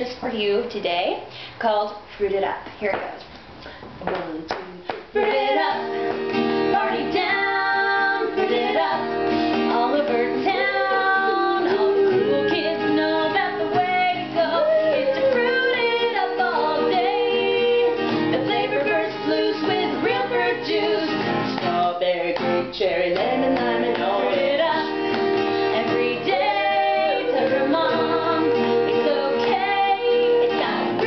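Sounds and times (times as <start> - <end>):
women singing a jingle: 4.2 - 31.0
strummed acoustic guitar: 5.2 - 31.0.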